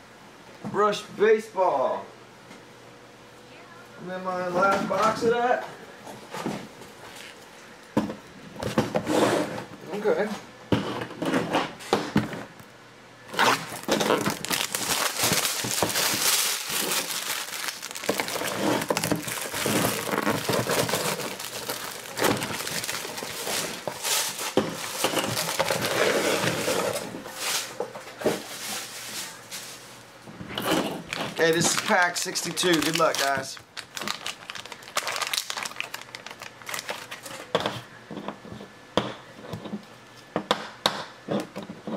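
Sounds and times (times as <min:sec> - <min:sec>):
tape peeling off: 0:13.3 - 0:24.6, 0:31.2 - 0:37.5
cardboard ripping and rustling: 0:13.3 - 0:29.8, 0:30.6 - 0:37.5.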